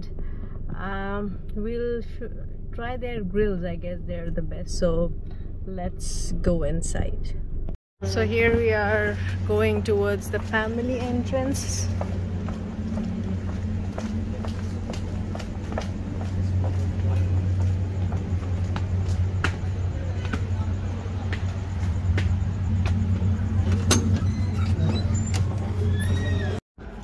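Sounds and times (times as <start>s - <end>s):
low mechanical hum: 0.0s - 27.0s
footsteps clicking: 10.3s - 23.8s.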